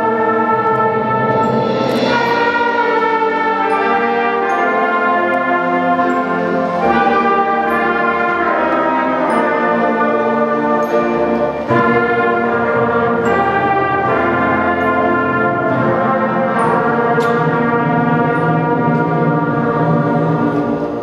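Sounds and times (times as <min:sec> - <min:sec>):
concert band sustained chords: 0:00.0 - 0:21.0.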